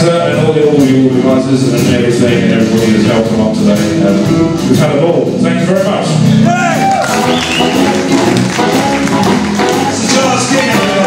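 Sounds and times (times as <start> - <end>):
electric blues band playing: 0.0 - 11.0
amplified harmonica: 7.1 - 11.0.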